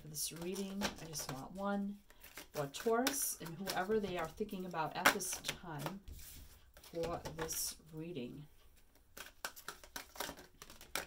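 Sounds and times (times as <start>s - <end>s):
cards being shuffled: 0.2s - 7.7s, 8.8s - 11.0s.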